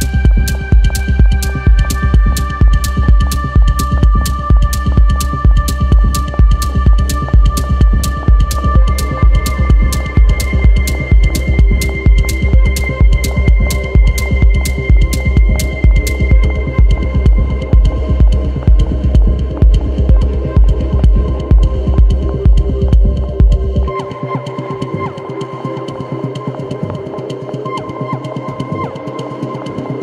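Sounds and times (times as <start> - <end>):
heavy kick drum: 0.0 - 23.9
techno music: 0.0 - 30.0.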